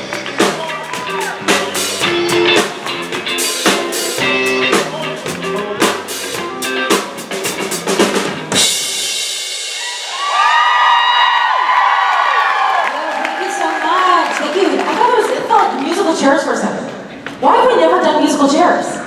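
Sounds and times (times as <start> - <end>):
live rock band playing: 0.0 - 11.1
audience shrieking and cheering: 0.1 - 2.6, 9.7 - 15.8.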